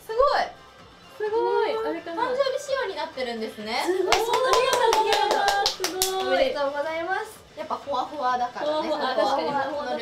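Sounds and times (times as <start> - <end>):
hands clapping: 4.1 - 6.5.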